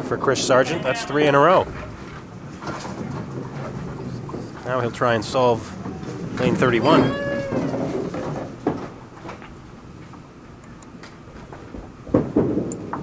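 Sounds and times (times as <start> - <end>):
bowling ball rolling on lane: 1.6 - 9.4
high squeal falling in pitch: 5.9 - 8.4.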